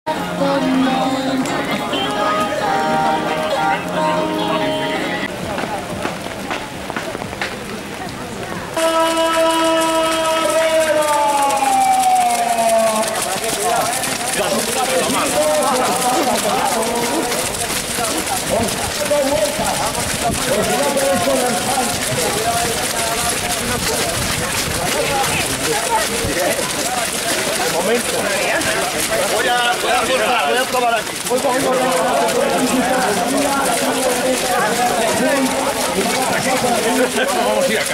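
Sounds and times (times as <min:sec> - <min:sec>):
crowd voices: 0:00.1 - 0:37.9
runners' footsteps on wet path: 0:00.1 - 0:37.9.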